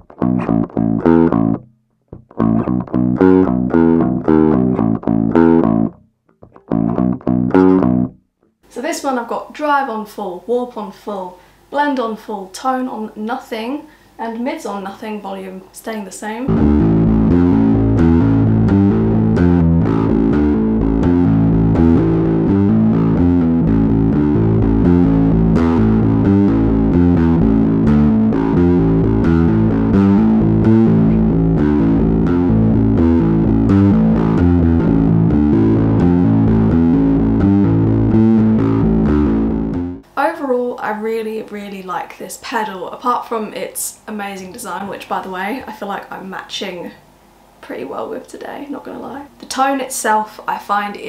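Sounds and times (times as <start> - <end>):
distorted bass guitar riff: 0.0 - 8.2, 16.5 - 40.1
woman talking: 8.7 - 16.5, 40.2 - 47.0, 47.6 - 51.0.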